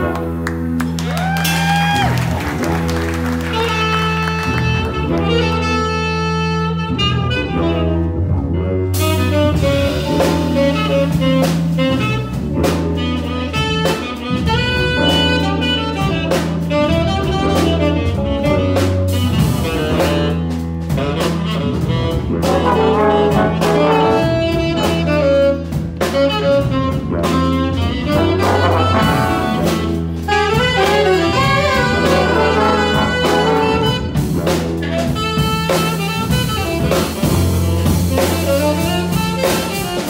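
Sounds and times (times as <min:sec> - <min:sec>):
big band jazz: 0:00.0 - 0:40.0
drum kit keeping time: 0:00.0 - 0:40.0
saxophone solo: 0:00.0 - 0:40.0.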